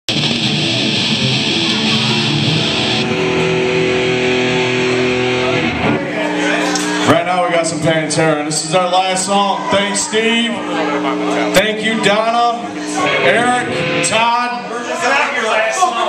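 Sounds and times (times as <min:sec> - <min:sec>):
distorted electric guitar chord: 0:00.1 - 0:08.2, 0:10.5 - 0:14.8
man talking into microphone: 0:07.1 - 0:16.0.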